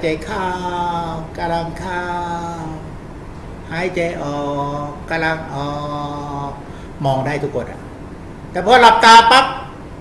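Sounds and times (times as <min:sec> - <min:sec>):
man intoning like a chant: 0:00.0 - 0:03.0, 0:03.7 - 0:07.5.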